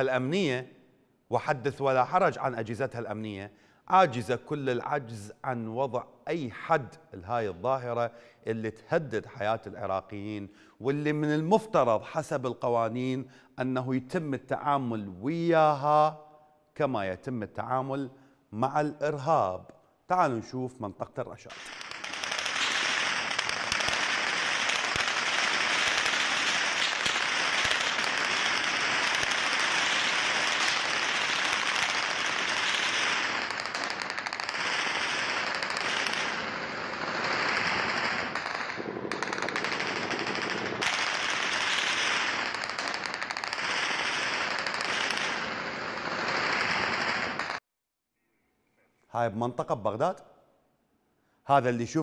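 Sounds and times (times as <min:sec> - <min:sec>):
automatic gunfire: 0:21.5 - 0:47.6.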